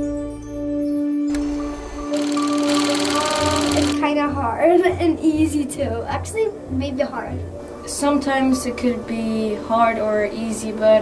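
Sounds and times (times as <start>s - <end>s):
soft background music: 0.0s - 11.0s
film projector clatter: 1.3s - 4.0s.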